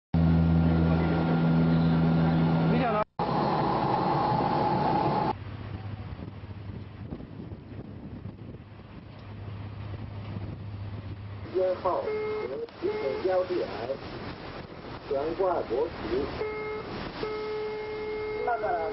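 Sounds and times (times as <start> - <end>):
ship engine humming: 0.2 - 6.1, 8.6 - 18.9
sea noise: 0.2 - 6.7, 8.5 - 18.9
wind: 0.2 - 18.9.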